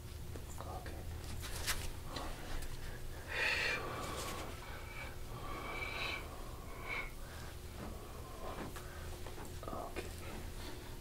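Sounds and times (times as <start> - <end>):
person breathing hard: 2.1 - 9.2.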